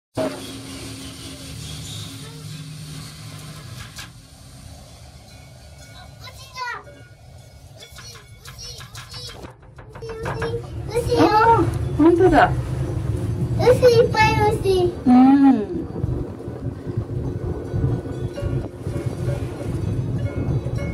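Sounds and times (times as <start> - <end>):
gondola mechanical hum: 0.2 - 20.9.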